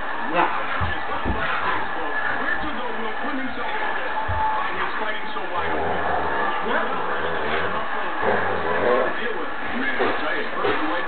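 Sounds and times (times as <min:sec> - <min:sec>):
man commentating: 0:00.1 - 0:11.0.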